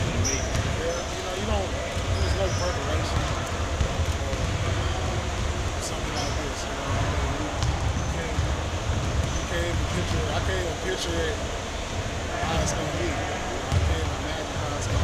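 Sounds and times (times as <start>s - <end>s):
basketballs bouncing on gym court: 0.0s - 10.7s, 12.5s - 15.0s
voices talking: 0.0s - 15.0s.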